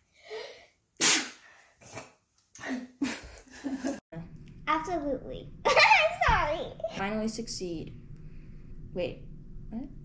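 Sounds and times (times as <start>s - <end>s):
person sneezing: 1.0s - 2.2s.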